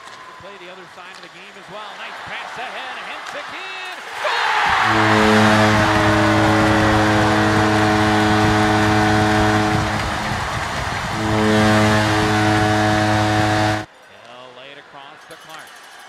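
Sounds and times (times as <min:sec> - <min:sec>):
crowd cheering: 0:00.0 - 0:13.9
arena goal horn blasts: 0:04.7 - 0:13.9.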